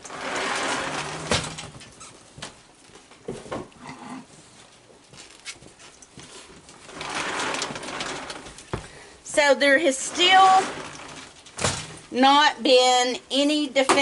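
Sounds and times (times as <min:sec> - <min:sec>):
rustling: 0:00.0 - 0:12.3
knocks and scuffling: 0:00.0 - 0:12.5.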